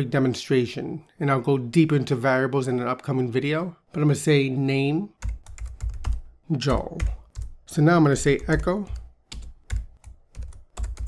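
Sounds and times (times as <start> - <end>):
computer keyboard typing: 5.2 - 7.6, 8.2 - 11.0.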